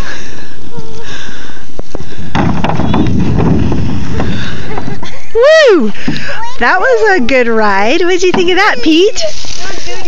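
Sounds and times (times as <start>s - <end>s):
knocks: 2.3s - 4.9s
plastic sled scraping over snow: 2.4s - 5.1s.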